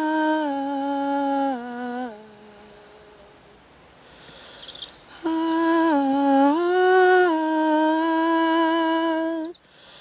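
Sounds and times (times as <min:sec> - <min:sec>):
person humming a melody: 0:00.0 - 0:03.5, 0:05.1 - 0:09.6.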